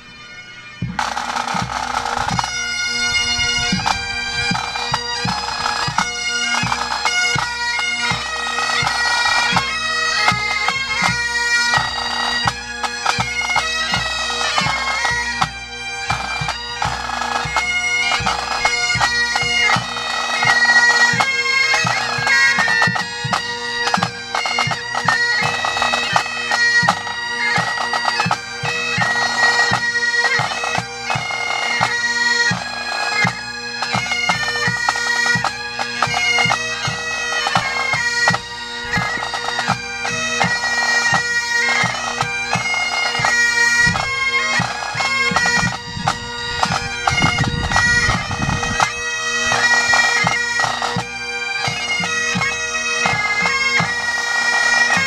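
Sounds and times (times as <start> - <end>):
bagpipes playing over drone: 0.0 - 55.0.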